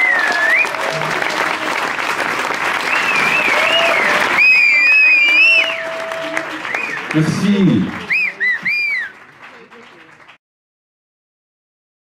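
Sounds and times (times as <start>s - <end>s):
faint applause: 0.0s - 10.4s
person whistling shrilly: 2.9s - 5.9s, 8.1s - 9.1s.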